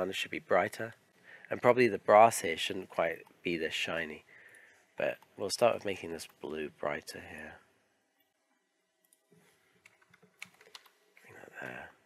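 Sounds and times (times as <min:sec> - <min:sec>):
low room noise: 0:00.0 - 0:12.0
computer controls clicking: 0:09.0 - 0:11.8.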